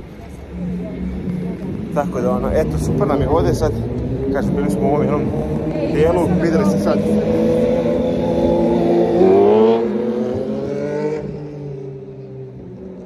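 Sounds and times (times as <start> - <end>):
vehicle engine revving: 0.4 - 13.0.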